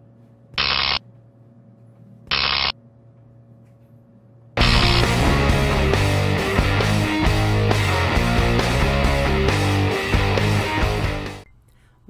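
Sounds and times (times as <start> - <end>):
low electrical hum: 0.0 - 5.7, 11.4 - 12.0
crackling electrical buzz: 0.6 - 1.0, 2.3 - 2.8, 4.6 - 7.5.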